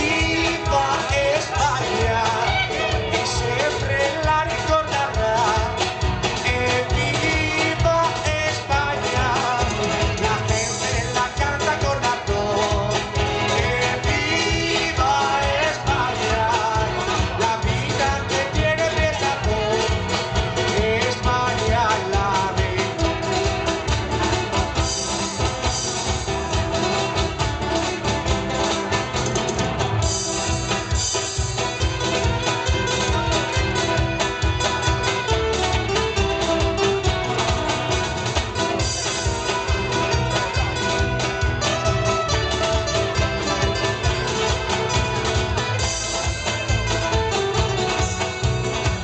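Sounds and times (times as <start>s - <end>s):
man singing: 0.0s - 23.9s, 38.7s - 48.2s
electric guitar: 0.0s - 49.0s
keyboard: 0.0s - 49.0s
strummed acoustic guitars: 0.0s - 49.0s.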